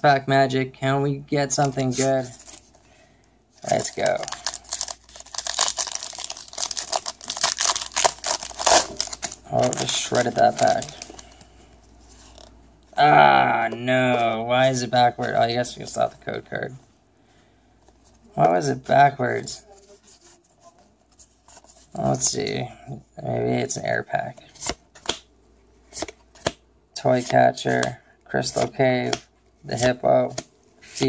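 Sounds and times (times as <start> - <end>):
trading cards rustling: 1.6 - 2.8, 3.6 - 12.6
foil wrapper crinkling: 3.6 - 11.4
trading cards snapping: 24.6 - 25.3.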